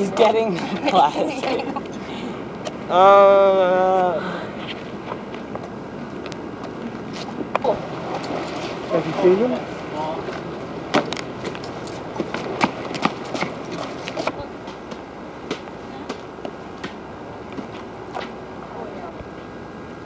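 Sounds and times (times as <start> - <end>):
steady background hiss: 0.0 - 20.0.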